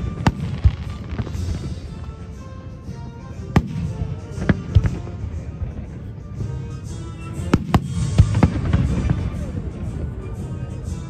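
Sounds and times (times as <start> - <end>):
fireworks bangs: 0.0 - 2.1, 7.4 - 10.2
music: 0.0 - 11.0.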